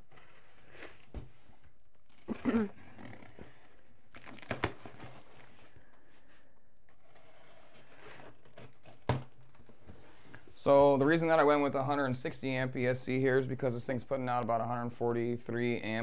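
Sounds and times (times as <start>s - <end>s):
cardboard tearing and crinkling: 1.9s - 5.4s, 6.9s - 9.6s.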